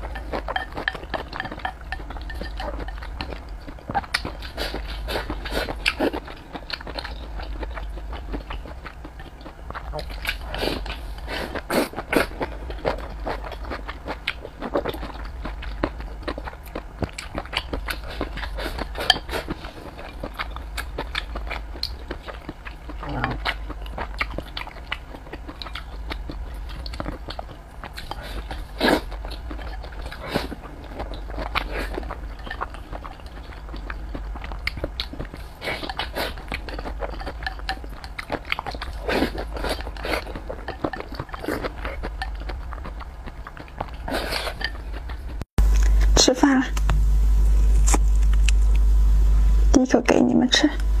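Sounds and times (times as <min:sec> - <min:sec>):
chewing and wet mouth sounds: 0:00.0 - 0:46.1, 0:47.5 - 0:48.9
steady low hum: 0:00.0 - 0:51.0.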